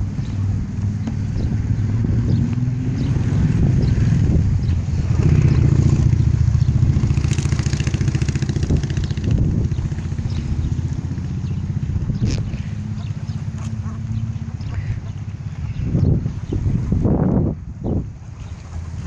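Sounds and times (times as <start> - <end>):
motor engine running: 0.0 - 19.0.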